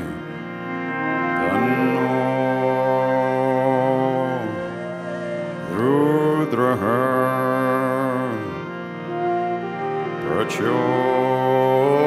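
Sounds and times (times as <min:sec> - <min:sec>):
person chanting: 0:00.0 - 0:12.0
steady drone: 0:00.0 - 0:12.0.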